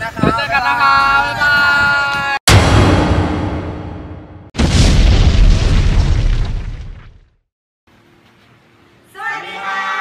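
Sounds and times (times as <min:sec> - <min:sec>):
explosion boom with deep rumble: 0:02.5 - 0:07.3.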